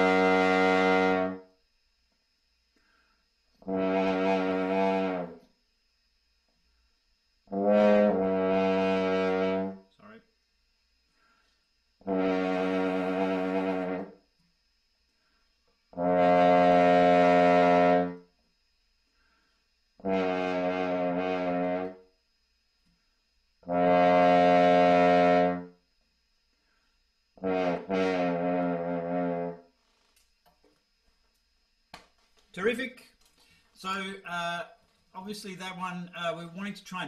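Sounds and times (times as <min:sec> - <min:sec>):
french horn playing: 0:00.0 - 0:01.4, 0:03.6 - 0:05.5, 0:07.5 - 0:09.8, 0:12.0 - 0:14.2, 0:15.9 - 0:18.2, 0:20.0 - 0:22.0, 0:23.6 - 0:25.7, 0:27.4 - 0:29.6.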